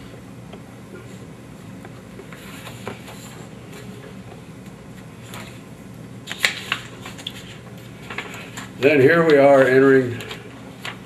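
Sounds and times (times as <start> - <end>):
low room hum: 0.0 - 11.0
paper rustling: 2.2 - 4.1, 5.0 - 5.6, 6.3 - 11.0.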